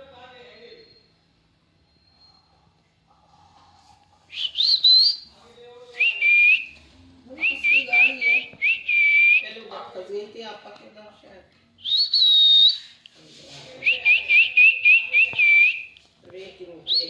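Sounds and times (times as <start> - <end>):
parakeet whistling: 4.3 - 5.3.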